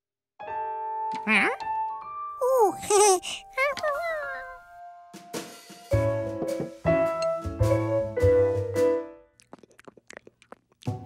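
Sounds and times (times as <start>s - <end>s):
piano music: 0.4s - 9.2s.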